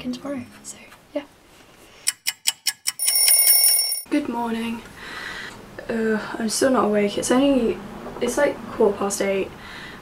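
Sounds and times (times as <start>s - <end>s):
alarm clock ticking: 2.4s - 4.0s
loud high bell ringing: 3.0s - 4.0s.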